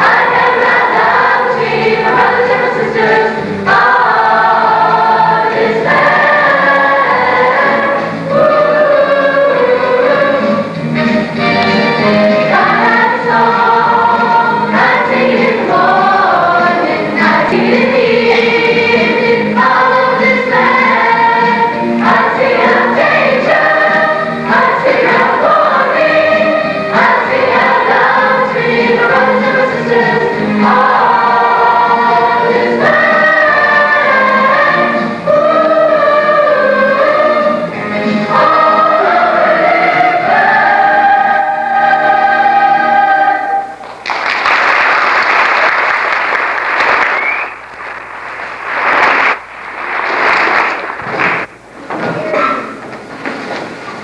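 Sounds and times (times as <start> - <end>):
children's chorus singing: 0.0 - 43.8.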